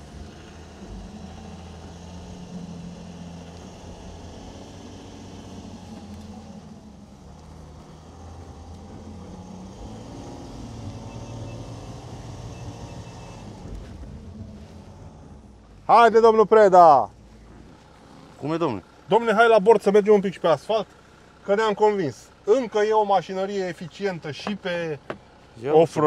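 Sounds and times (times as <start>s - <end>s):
car engine driving off-road: 0.0s - 26.0s.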